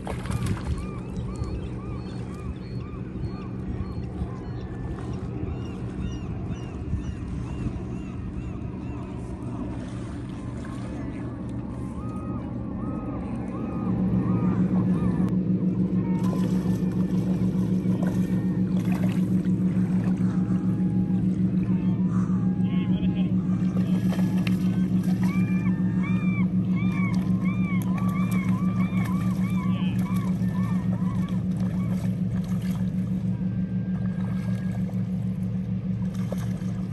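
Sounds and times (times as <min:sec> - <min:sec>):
steady motor hum: 0:00.0 - 0:36.9.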